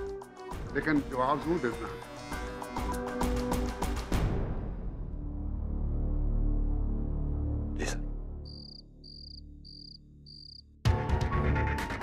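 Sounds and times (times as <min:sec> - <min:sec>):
cricket chirps: 0:08.5 - 0:10.7.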